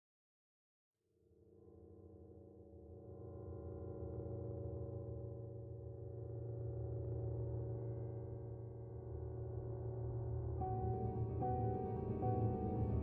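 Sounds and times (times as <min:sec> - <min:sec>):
synthesized drone with low hum: 0:01.6 - 0:13.0.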